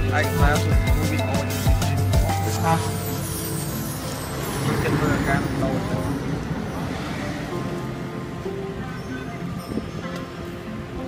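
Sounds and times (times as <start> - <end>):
people talking: 0.0 - 1.5, 2.1 - 3.1, 4.6 - 6.3
motor vehicle running: 0.0 - 10.4.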